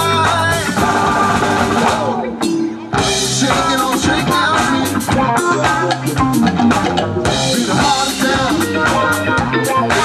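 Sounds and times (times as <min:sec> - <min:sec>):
bass guitar: 0:00.0 - 0:10.0
drum kit: 0:00.0 - 0:10.0
electric guitars: 0:00.0 - 0:10.0.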